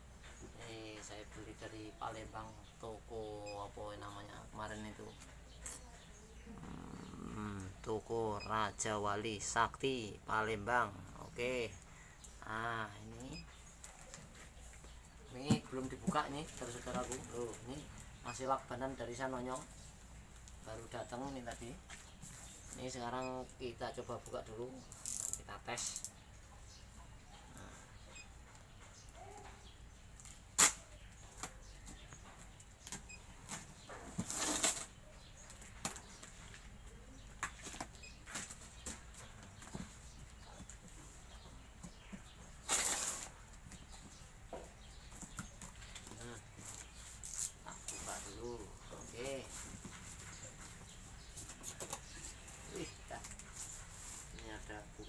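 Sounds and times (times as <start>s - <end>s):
packing tape tearing: 30.2s - 30.9s, 34.2s - 34.9s, 42.6s - 43.4s.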